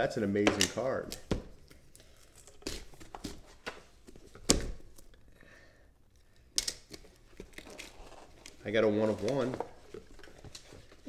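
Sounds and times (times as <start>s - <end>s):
cardboard and plastic rustling: 7.2s - 11.0s.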